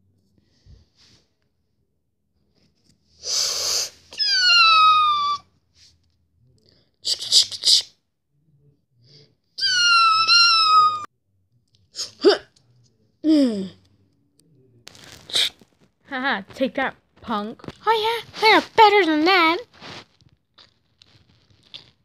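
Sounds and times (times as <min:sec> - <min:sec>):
child making hissing bursts: 0:03.2 - 0:05.4, 0:07.0 - 0:08.0
child squealing cries: 0:04.1 - 0:05.5, 0:09.6 - 0:11.1
child falling whoop: 0:09.6 - 0:11.1.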